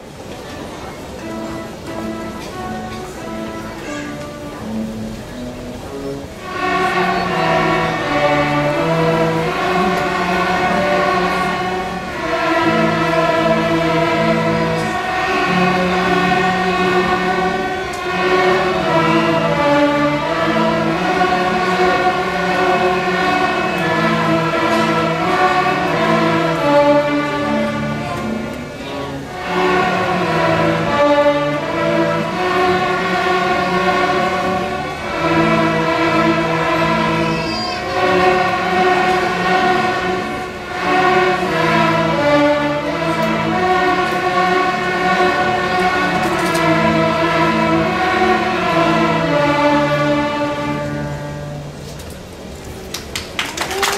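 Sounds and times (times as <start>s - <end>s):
string orchestra playing: 0.0s - 53.9s.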